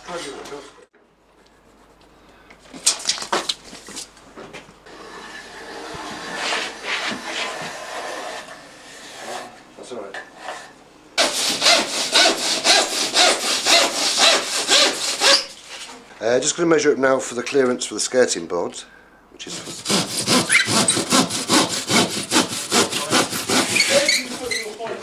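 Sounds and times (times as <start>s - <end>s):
hand saw cutting plasterboard: 4.9s - 9.6s, 10.4s - 15.6s, 19.5s - 25.0s
scraping and rubbing on board: 5.0s - 9.6s, 19.5s - 25.0s.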